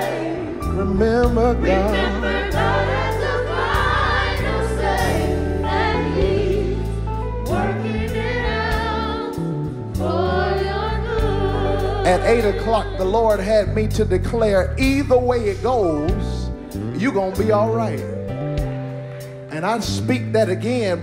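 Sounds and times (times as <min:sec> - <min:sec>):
choir and congregation singing: 0:00.0 - 0:13.8
bass notes: 0:00.0 - 0:21.0.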